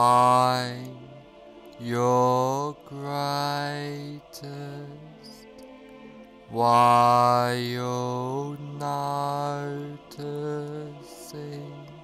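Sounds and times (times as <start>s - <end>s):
meditation music with chant-like notes: 0.0s - 12.0s.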